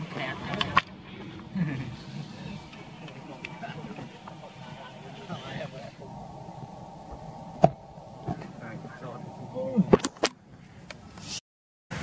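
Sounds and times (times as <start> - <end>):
people talking: 1.6 - 10.1.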